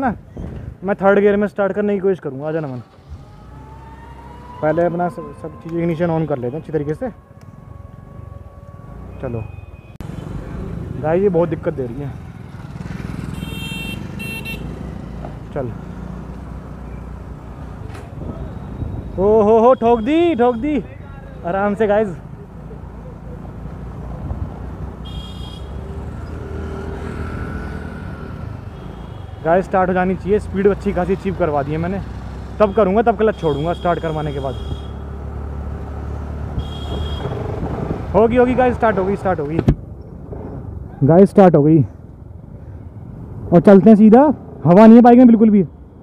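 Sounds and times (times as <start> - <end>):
road and wind noise: 0.0 - 46.0
scooter engine: 12.2 - 15.2.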